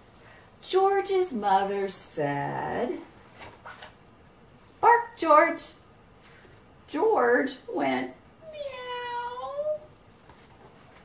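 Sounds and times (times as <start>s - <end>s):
woman calling out loudly: 7.7s - 9.8s.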